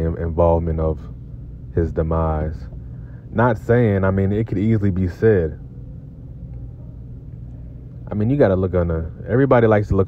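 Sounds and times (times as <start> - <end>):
low rumble hum: 0.0 - 10.0.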